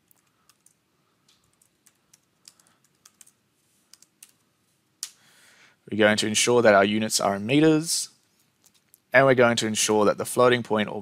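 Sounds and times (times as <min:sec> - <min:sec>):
faint keyboard typing: 0:00.0 - 0:05.2.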